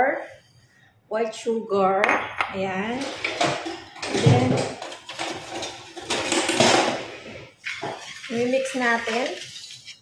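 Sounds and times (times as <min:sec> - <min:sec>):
whisk scraping in metal pot: 0:07.2 - 0:10.0.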